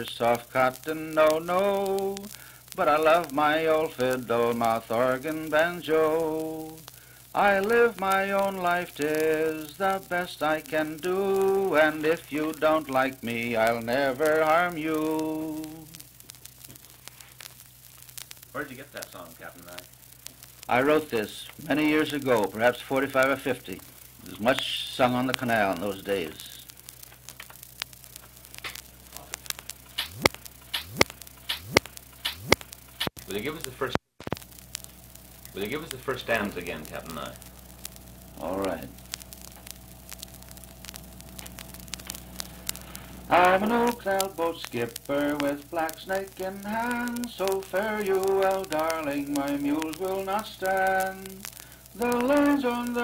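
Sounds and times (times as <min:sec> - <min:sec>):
clicks and crackles: 0:00.0 - 0:53.0
record surface hiss: 0:00.0 - 0:53.0
low hum: 0:19.4 - 0:53.0.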